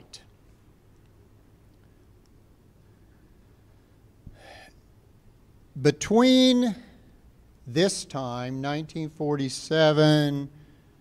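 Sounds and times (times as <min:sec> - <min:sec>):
faint room hum: 0:00.0 - 0:11.0
man drawing breath: 0:04.3 - 0:04.8.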